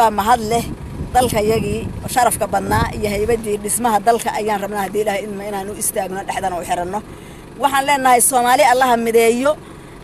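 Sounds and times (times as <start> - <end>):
person talking: 0.0 - 9.6
low steady background rumble: 0.0 - 10.0.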